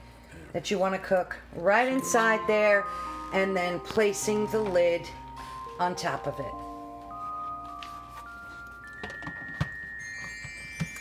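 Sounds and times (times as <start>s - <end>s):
background music with held notes: 1.8s - 11.0s.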